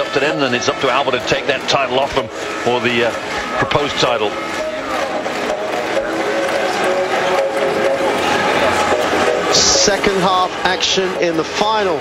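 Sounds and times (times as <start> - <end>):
crowd noise: 0.0 - 12.0
held melodic tones: 0.6 - 12.0.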